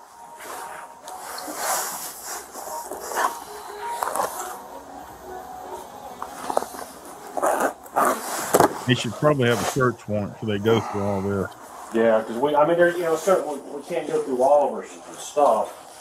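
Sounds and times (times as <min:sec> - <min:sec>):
plastic bags rustling: 0:00.0 - 0:10.0.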